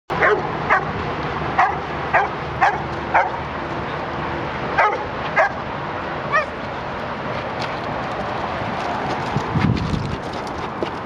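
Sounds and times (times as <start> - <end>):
dog barking and yipping: 0.2 - 0.9, 1.6 - 3.4, 4.8 - 5.6.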